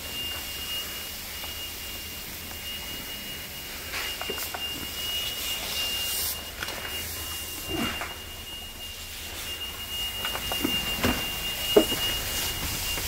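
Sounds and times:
smoke alarm high-pitched tone: 0:00.0 - 0:13.0.

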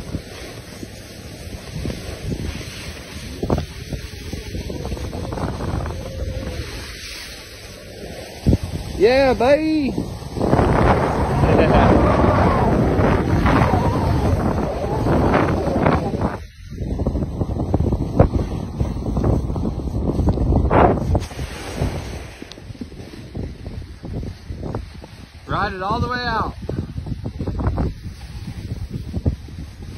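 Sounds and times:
wind buffeting a microphone: 0:00.0 - 0:29.9.

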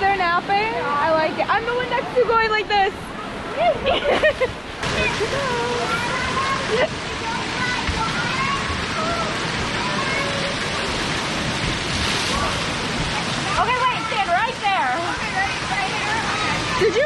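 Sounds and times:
falling and spraying water: 0:03.1 - 0:17.0
children's voices: 0:05.0 - 0:11.1, 0:12.3 - 0:17.0.

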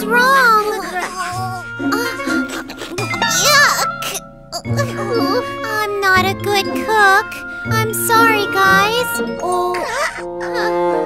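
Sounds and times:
light tinkling background music: 0:00.0 - 0:11.0.

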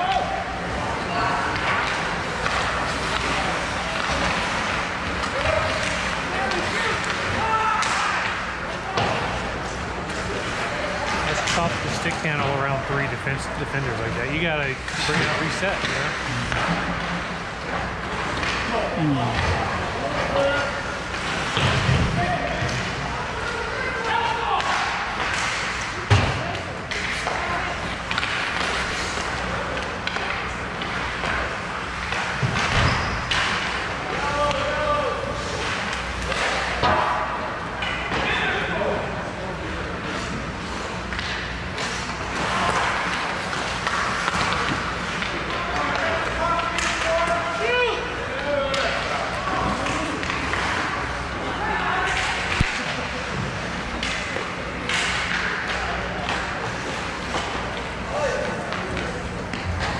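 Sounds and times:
hockey sticks and puck clacking: 0:00.1 - 0:18.8, 0:24.0 - 0:38.5, 0:39.6 - 0:59.9.

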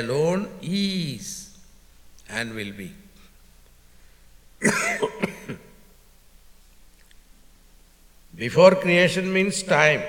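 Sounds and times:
man coughing: 0:04.6 - 0:05.8.

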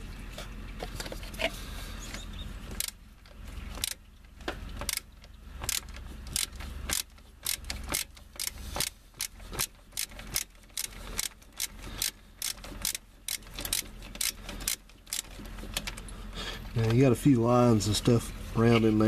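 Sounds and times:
ratchet clicking: 0:02.7 - 0:04.0, 0:04.8 - 0:16.1.

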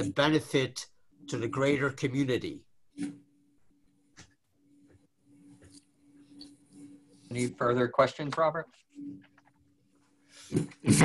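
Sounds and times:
man speaking: 0:00.0 - 0:02.7
faint steady hum: 0:00.0 - 0:11.0.

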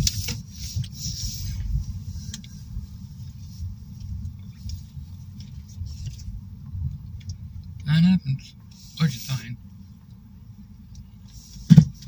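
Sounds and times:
car cabin rumble: 0:00.0 - 0:12.0
person speaking loudly: 0:07.9 - 0:09.6.

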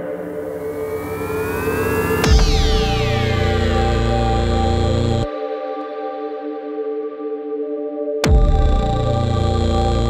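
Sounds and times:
rising noise sweep: 0:00.0 - 0:05.3
synth tones gliding upward: 0:00.0 - 0:05.3
held synth tones: 0:00.2 - 0:05.3.

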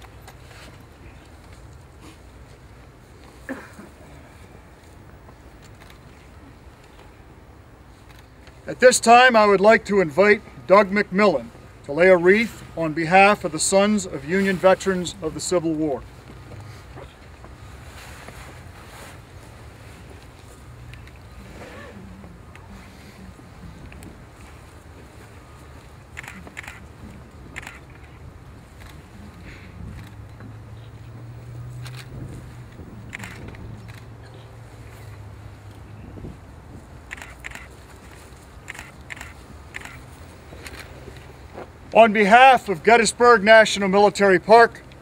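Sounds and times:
faint outdoor hiss: 0:00.0 - 0:45.0
wind rumble on microphone: 0:31.5 - 0:34.1, 0:35.5 - 0:37.1.

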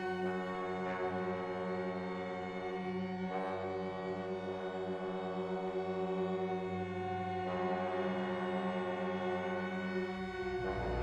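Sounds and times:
ensemble holding low chord: 0:10.2 - 0:11.0.

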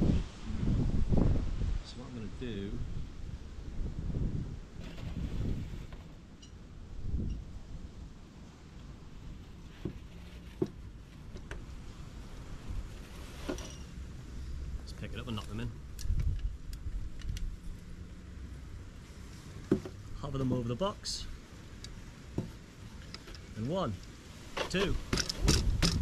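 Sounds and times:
wind buffeting microphone: 0:00.0 - 0:08.2, 0:14.1 - 0:17.8, 0:24.9 - 0:26.0.

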